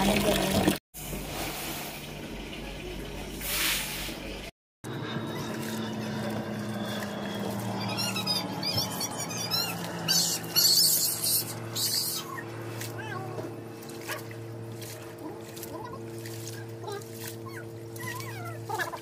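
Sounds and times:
water splashing: 0:05.3 - 0:19.0
short high squeaky chirps: 0:07.4 - 0:12.4.

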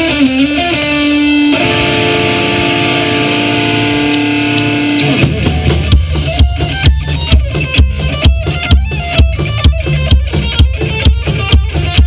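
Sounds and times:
electric guitar sustained chord: 0:00.0 - 0:07.3.

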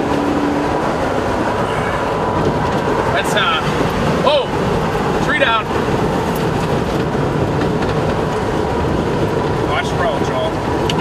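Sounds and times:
strong wind rushing: 0:00.0 - 0:11.0.

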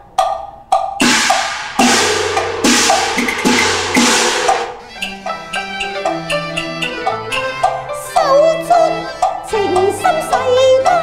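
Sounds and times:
crashing percussion strokes: 0:00.7 - 0:07.0.

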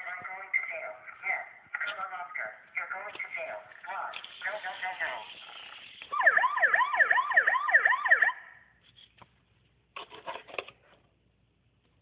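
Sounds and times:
police siren yelping: 0:06.1 - 0:08.6.

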